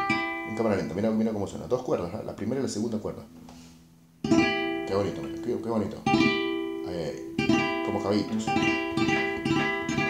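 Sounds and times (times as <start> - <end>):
classical guitar strings plucked: 0.0 - 10.0.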